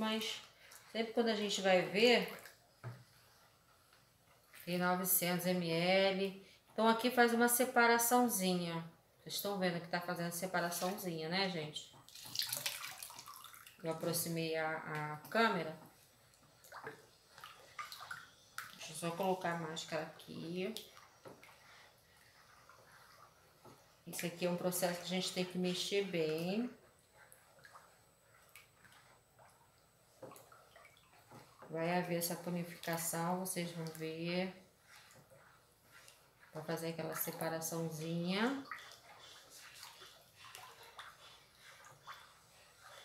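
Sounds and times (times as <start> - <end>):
plastic spoon stirring thick liquid: 10.0 - 43.0.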